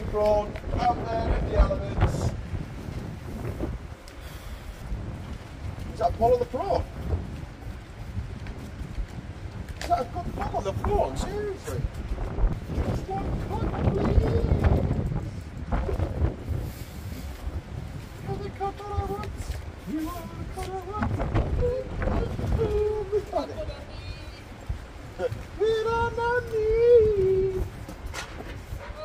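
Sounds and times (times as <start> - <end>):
gusty wind buffeting microphone: 0.0 - 29.0.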